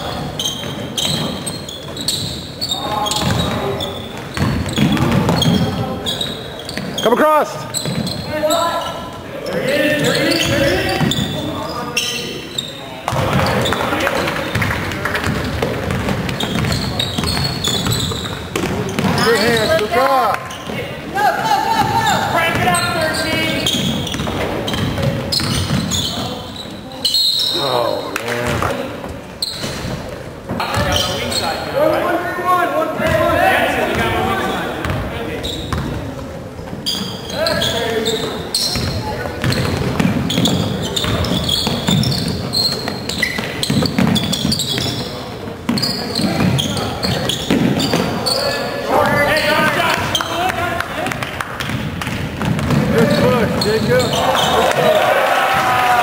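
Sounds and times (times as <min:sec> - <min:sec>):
basketball bouncing on hardwood floor: 0:04.3 - 0:05.8, 0:14.5 - 0:19.2, 0:23.6 - 0:26.0, 0:35.7 - 0:36.0, 0:38.7 - 0:45.0, 0:51.1 - 0:53.2
people shouting: 0:54.1 - 0:56.0.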